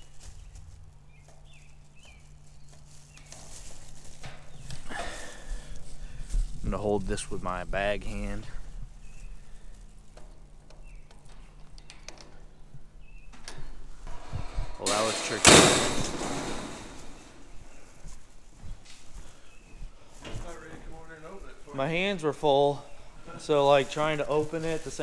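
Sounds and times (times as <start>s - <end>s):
lock and metal gate rattling: 13.4s - 17.4s
loud clattering burst: 14.2s - 17.6s.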